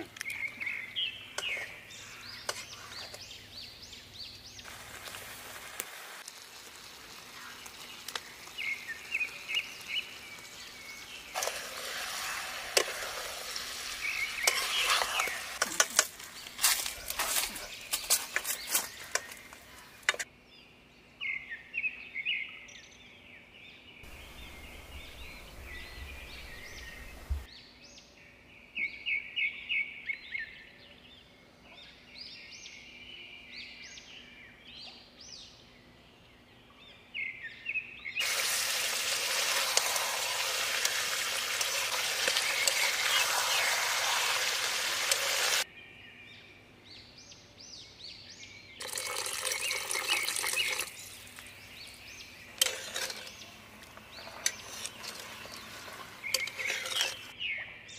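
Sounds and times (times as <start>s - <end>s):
small birds chirping: 0.0s - 5.4s, 6.4s - 57.9s
loud even hiss: 38.2s - 45.6s.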